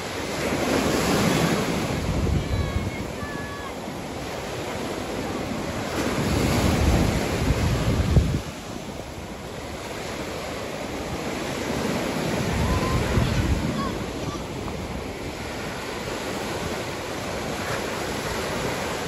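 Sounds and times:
surf breaking on beach: 0.0 - 19.0
wind buffeting microphone: 0.2 - 19.0.

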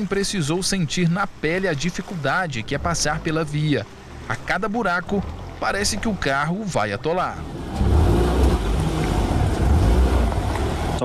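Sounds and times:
tyres churning through mud: 4.5 - 11.0
car engine rumble: 5.0 - 11.0.

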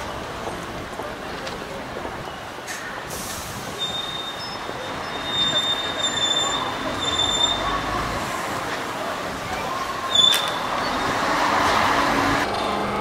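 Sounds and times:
vehicle noise: 0.0 - 13.0.

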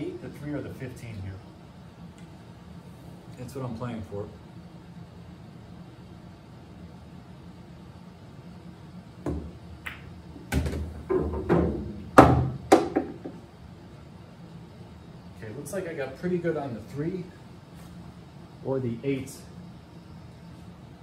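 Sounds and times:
cue striking ball: 9.2 - 13.4
pool balls clacking: 9.3 - 13.4.

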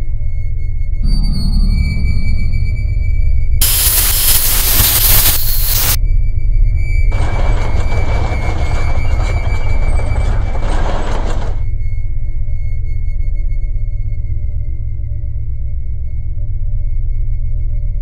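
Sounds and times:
deep sustained drone: 0.9 - 6.0
steady high tone: 1.0 - 6.0
hissing noise: 3.6 - 6.0.

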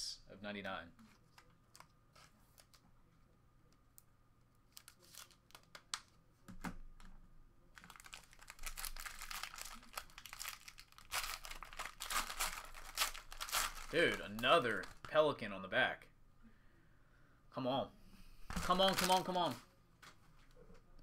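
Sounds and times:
foil wrapper tearing and crinkling: 4.7 - 6.0, 7.8 - 15.1, 18.6 - 19.5.

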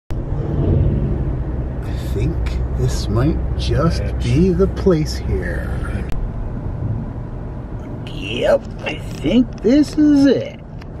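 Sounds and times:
car engine and road noise: 0.1 - 11.0.

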